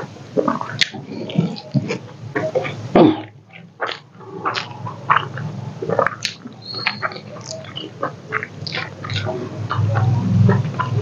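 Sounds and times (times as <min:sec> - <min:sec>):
man chewing food: 0:00.0 - 0:11.0
lip smacks: 0:00.4 - 0:11.0.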